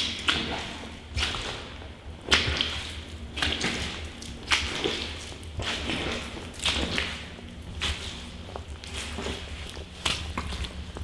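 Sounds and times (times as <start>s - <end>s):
footsteps squelching through mud: 0.0s - 11.0s.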